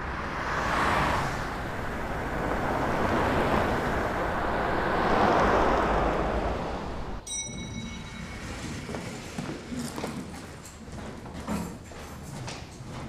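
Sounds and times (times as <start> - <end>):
cars passing by: 0.0 - 13.0.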